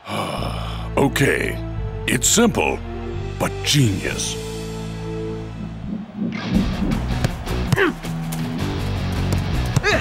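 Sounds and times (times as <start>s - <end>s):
background music with beat: 4.4s - 10.0s.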